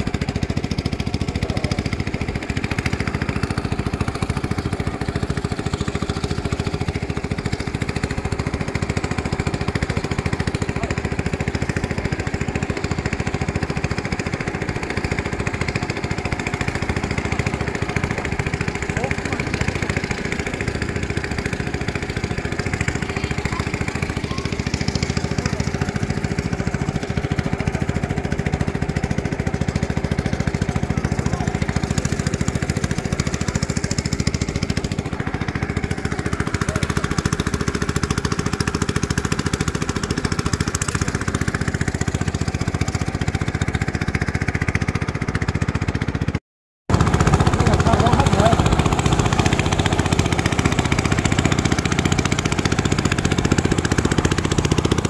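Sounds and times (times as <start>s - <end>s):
boat motor droning: 0.0s - 55.0s.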